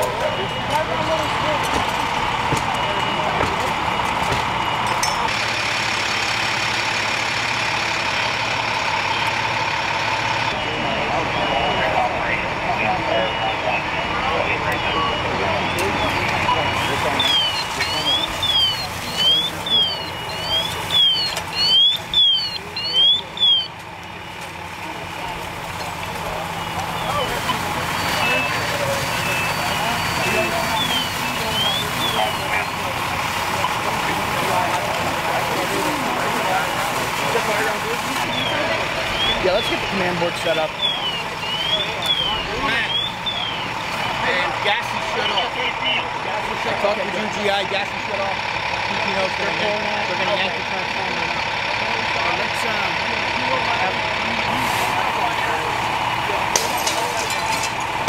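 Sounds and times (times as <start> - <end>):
fire apparatus running: 0.0 - 58.0
fire truck siren yelping: 0.0 - 58.0.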